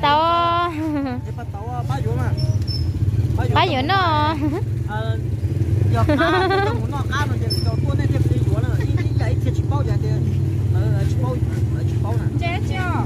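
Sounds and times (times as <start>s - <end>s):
people talking: 0.0s - 2.5s, 3.4s - 5.2s, 5.9s - 13.0s
low engine hum: 0.0s - 13.0s.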